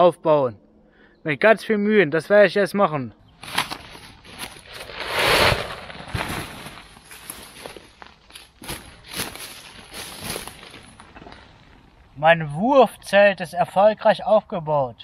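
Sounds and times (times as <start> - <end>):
tent fabric springing open: 3.4 - 11.6
dry leaves rustling: 3.4 - 12.0.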